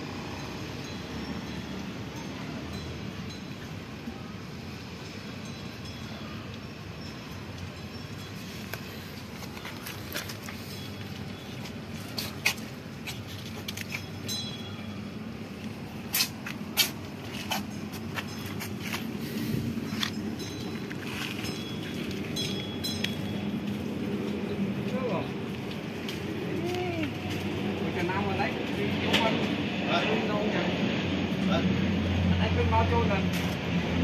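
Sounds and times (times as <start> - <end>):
distant voices murmuring: 1.1 - 34.0.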